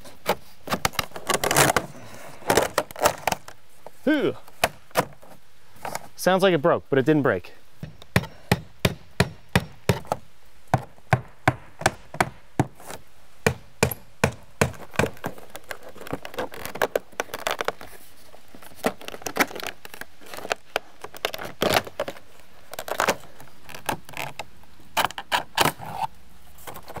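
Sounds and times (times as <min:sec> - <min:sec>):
hammer driving nails: 0:10.8 - 0:12.8, 0:13.5 - 0:15.2.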